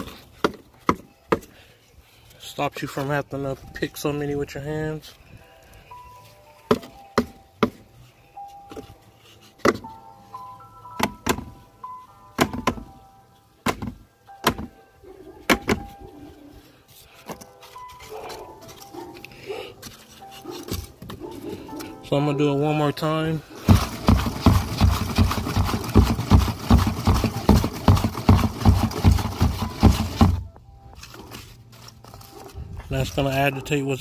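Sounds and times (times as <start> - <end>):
faint background tune: 0.0 - 25.4, 27.1 - 34.0
cardboard knocking on plastic bin: 23.7 - 30.4.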